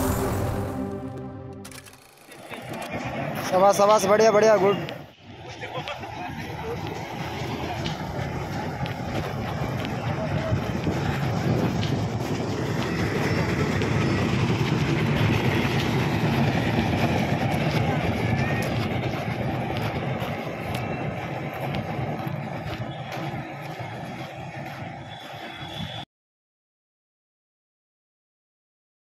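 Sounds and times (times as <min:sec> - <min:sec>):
faint voices: 0:02.2 - 0:25.9.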